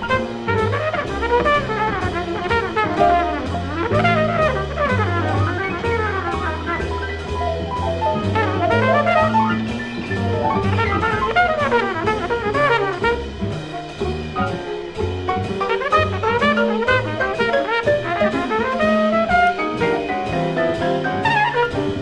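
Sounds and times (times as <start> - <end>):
horns playing: 0.0 - 13.7, 15.5 - 22.0
double bass line: 0.0 - 22.0
drum kit cymbals: 0.0 - 22.0.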